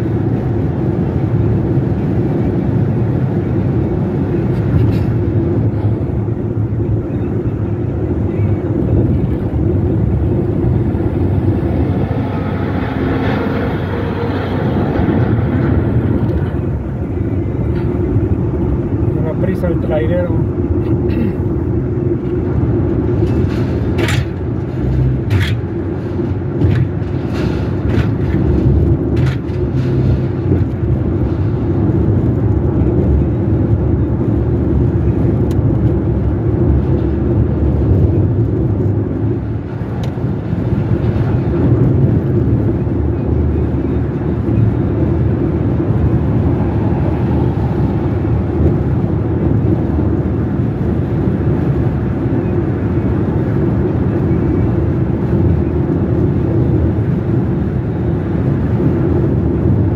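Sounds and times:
tyre and engine road rumble: 0.0s - 59.9s.

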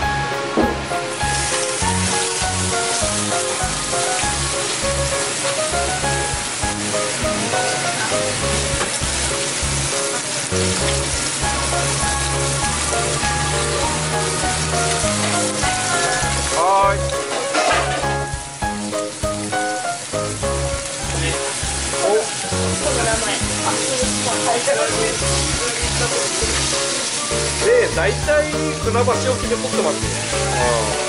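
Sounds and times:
background music: 0.0s - 31.0s
fish sizzling in hot oil: 0.0s - 31.0s.

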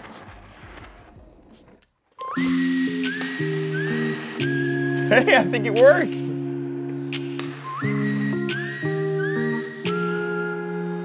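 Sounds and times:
gas torch hissing: 2.4s - 5.4s, 7.0s - 11.0s.

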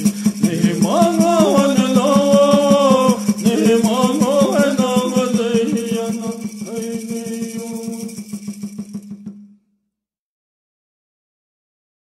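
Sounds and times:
fast drum beat: 0.0s - 9.4s
rattle shaking: 0.0s - 9.4s
held sung note: 0.2s - 8.1s.

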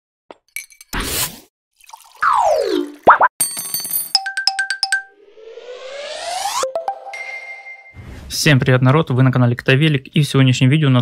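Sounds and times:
rising boing sweeps: 5.1s - 8.0s.

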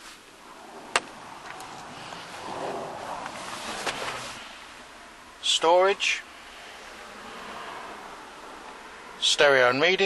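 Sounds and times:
car cabin background hiss: 0.0s - 10.0s.

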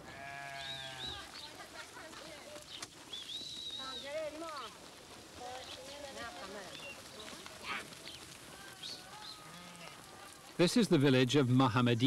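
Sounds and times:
sheep bleating: 0.0s - 1.2s, 8.6s - 10.4s.

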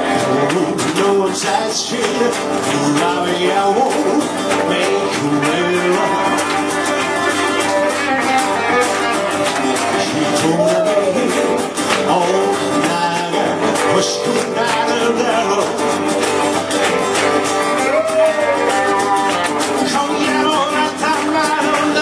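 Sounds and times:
electric and acoustic guitars: 0.0s - 22.0s.

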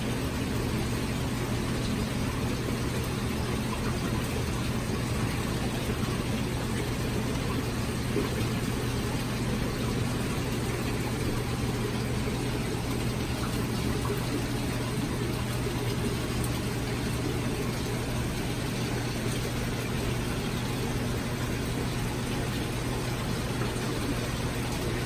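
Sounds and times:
constant low hum: 0.0s - 25.0s.

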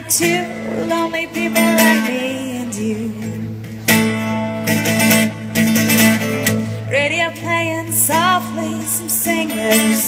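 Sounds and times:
acoustic guitar strumming chords: 0.0s - 10.0s.

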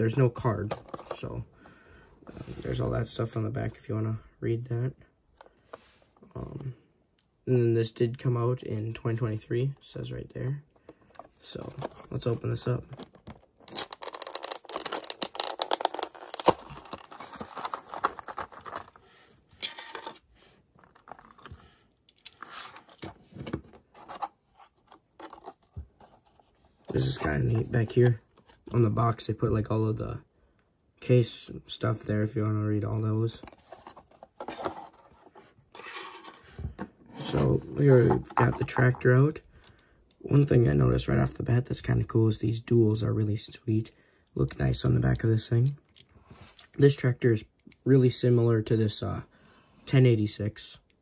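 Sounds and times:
plastic rustling: 11.1s - 21.8s
plastic blister pack tearing: 13.6s - 19.0s.

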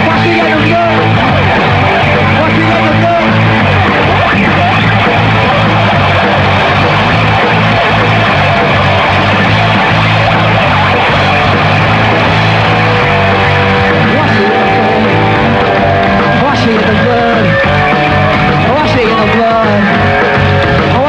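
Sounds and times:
bass and drums: 0.0s - 21.0s
electric guitar: 0.0s - 21.0s.

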